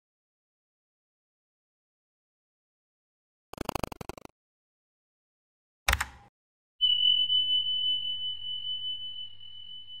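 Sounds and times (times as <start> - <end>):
high steady tone: 6.8 - 10.0.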